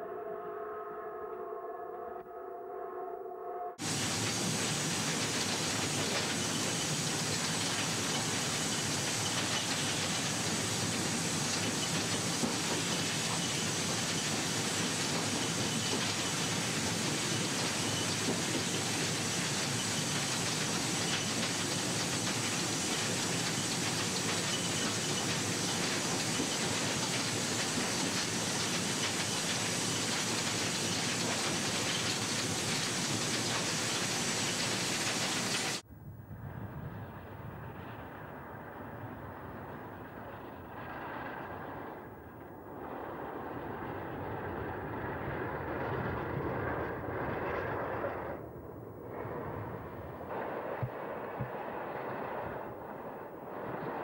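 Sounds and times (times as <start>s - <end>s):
steam hissing: 3.8s - 35.8s
train running noise: 3.8s - 54.0s.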